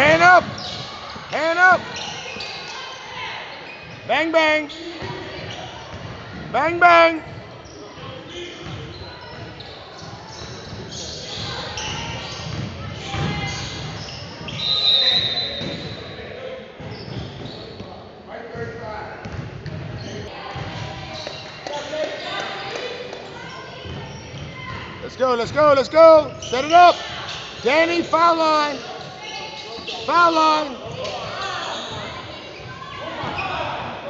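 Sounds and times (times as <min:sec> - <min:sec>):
referee's whistle: 0:13.5 - 0:16.1.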